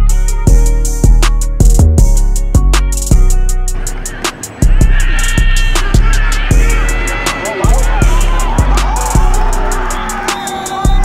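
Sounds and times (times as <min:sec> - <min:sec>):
music with heavy drum beat: 0:00.0 - 0:11.0.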